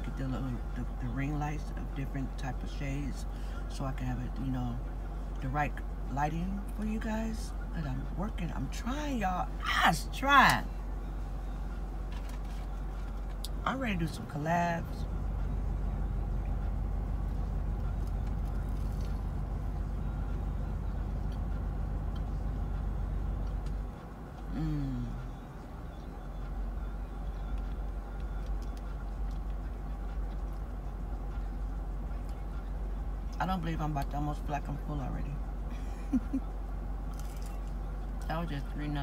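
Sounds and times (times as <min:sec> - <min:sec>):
car idling: 0:00.0 - 0:39.0.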